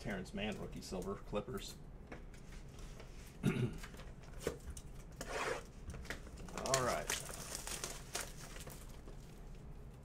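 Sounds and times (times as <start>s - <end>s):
plastic wrap crinkling and tearing: 6.0s - 10.0s.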